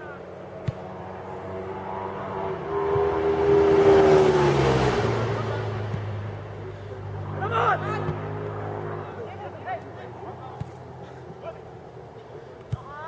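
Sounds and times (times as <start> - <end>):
vehicle engine passing by: 0.0 - 12.0.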